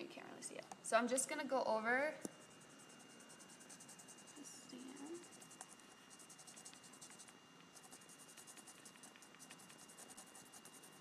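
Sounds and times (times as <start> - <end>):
brush tip scratching on rubber stamp: 2.3 - 11.0.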